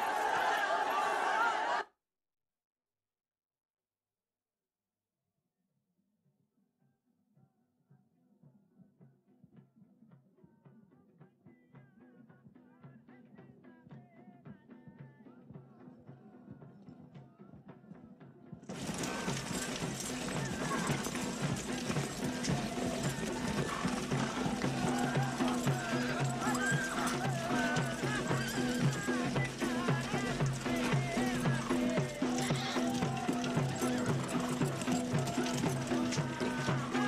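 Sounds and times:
music: 7.3 - 37.0
horse hooves in a regular beat: 18.7 - 37.0
horses neighing: 18.7 - 37.0.

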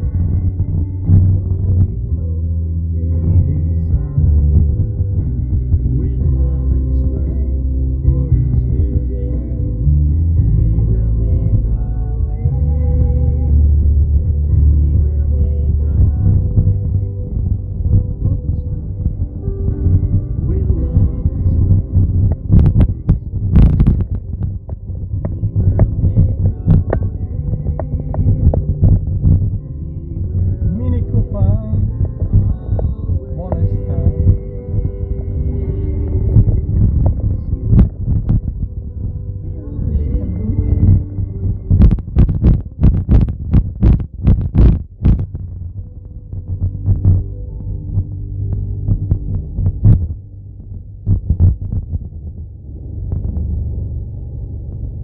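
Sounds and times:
car cabin rumble: 0.0 - 55.0
dull thumps: 40.2 - 53.7.

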